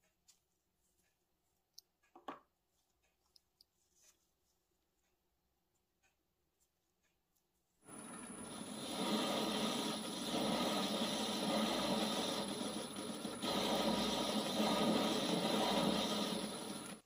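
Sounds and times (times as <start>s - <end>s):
metal lathe cutting metal: 7.9s - 17.0s
spindle drive whirring: 7.9s - 17.0s.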